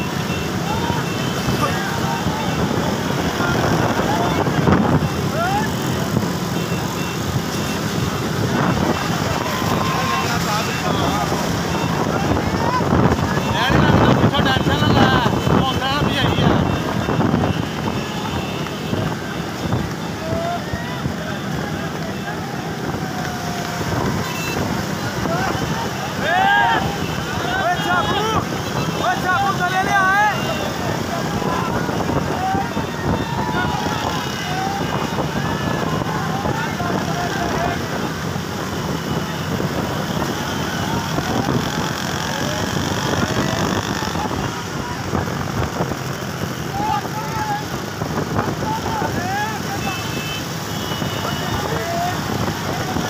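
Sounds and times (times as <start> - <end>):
men shouting: 0.0 - 38.2, 48.5 - 53.0
road traffic: 0.0 - 53.0
wind on microphone: 2.3 - 6.4, 30.8 - 49.2.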